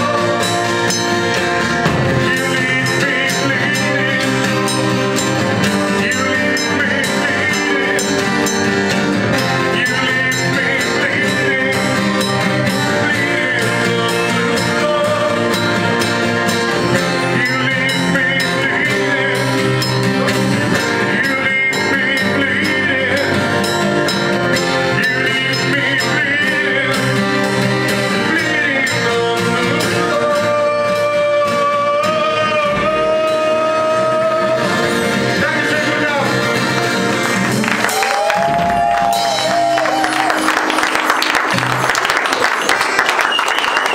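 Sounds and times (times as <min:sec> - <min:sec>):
person singing: 0:00.0 - 0:37.2
acoustic guitar: 0:00.0 - 0:43.9
drums: 0:00.0 - 0:43.9.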